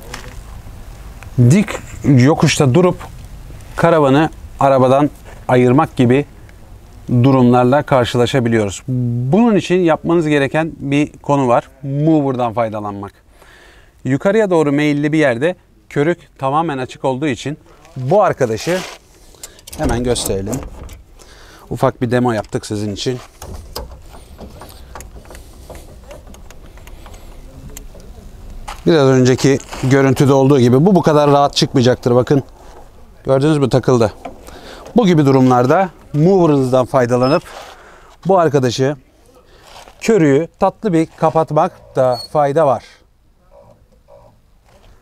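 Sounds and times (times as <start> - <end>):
hitch coupling clicks and knocks: 19.4 - 21.2, 22.3 - 28.7, 34.1 - 36.2
low steady rumble: 22.8 - 37.2.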